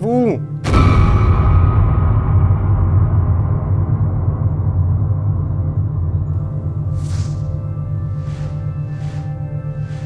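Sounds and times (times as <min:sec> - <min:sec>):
deep cinematic rumble: 0:00.7 - 0:08.9.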